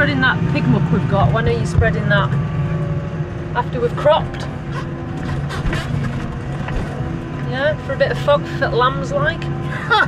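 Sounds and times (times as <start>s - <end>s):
tractor engine drone: 0.0s - 10.0s.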